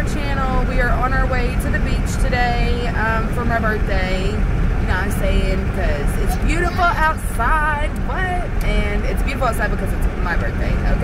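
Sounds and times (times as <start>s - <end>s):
car interior rumble: 0.0s - 11.0s
woman talking: 0.0s - 11.0s.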